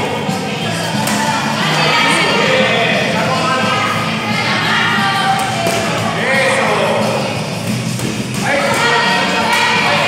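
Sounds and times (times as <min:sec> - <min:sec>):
people shouting: 0:08.4 - 0:10.0.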